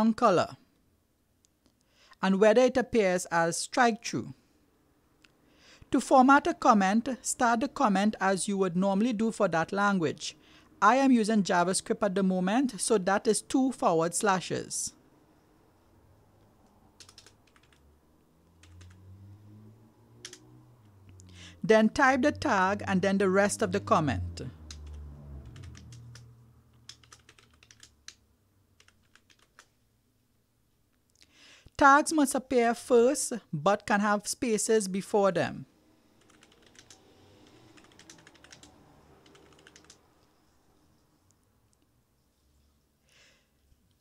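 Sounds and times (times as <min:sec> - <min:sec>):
faint keyboard typing: 0:16.4 - 0:17.9, 0:18.6 - 0:19.0, 0:20.2 - 0:20.4, 0:24.7 - 0:28.2, 0:28.8 - 0:29.8, 0:36.2 - 0:40.6.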